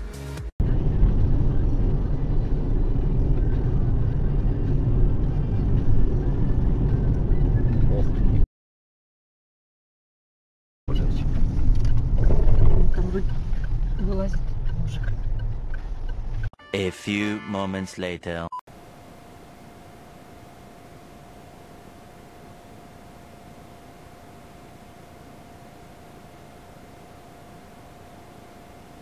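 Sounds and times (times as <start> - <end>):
engine and road rumble: 0.6 - 8.4, 10.9 - 16.5, 18.7 - 29.0
voices in car: 12.2 - 15.5.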